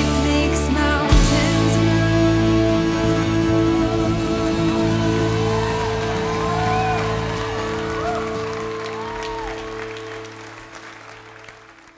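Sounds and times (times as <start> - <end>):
crowd cheering: 3.7 - 11.9
people clapping: 4.5 - 11.9.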